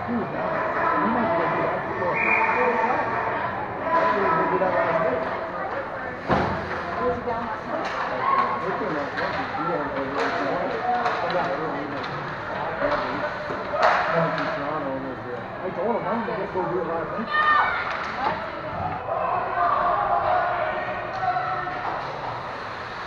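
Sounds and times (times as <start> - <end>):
hockey sticks and puck clacking: 4.9 - 14.6, 17.8 - 18.6.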